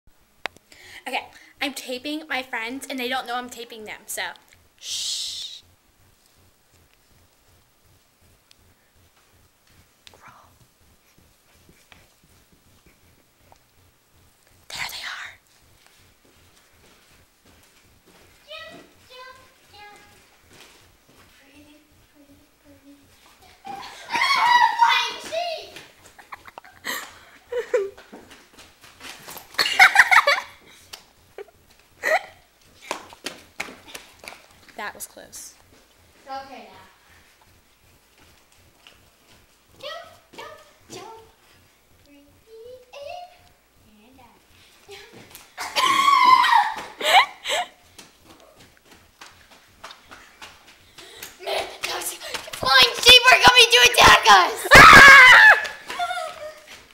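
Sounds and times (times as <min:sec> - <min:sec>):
faint footsteps on floor: 0:06.1 - 0:14.7, 0:15.4 - 0:24.4, 0:25.1 - 0:30.8, 0:35.5 - 0:42.1
girl shouting or squealing: 0:23.7 - 0:25.3, 0:45.6 - 0:47.0, 0:54.0 - 0:56.6.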